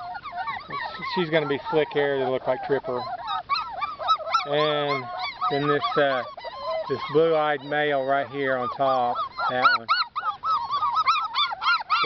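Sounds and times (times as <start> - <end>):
puppies whining and yipping: 0.0 - 12.0.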